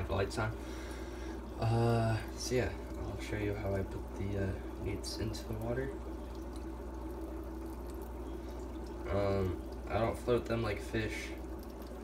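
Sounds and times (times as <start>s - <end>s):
low steady hum: 0.0s - 12.0s
water trickling: 0.0s - 12.0s.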